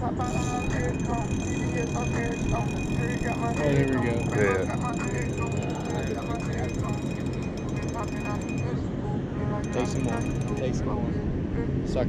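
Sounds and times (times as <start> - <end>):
faint voices: 0.0 - 11.2
steady low hum: 0.0 - 12.0.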